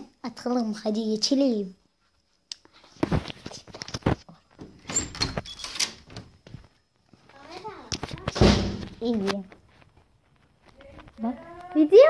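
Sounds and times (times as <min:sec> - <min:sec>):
clattering and scraping of objects: 0:02.8 - 0:11.3.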